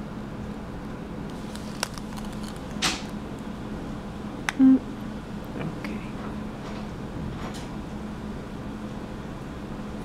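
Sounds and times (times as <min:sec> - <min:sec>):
skin rubbing on plastic: 0:01.3 - 0:02.8.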